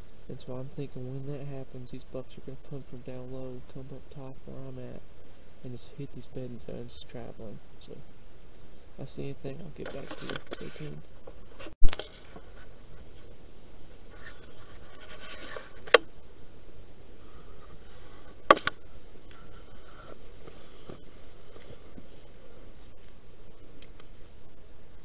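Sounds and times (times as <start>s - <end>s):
scratching and rubbing on microphone: 9.8s - 13.4s, 14.0s - 16.0s, 17.3s - 23.7s.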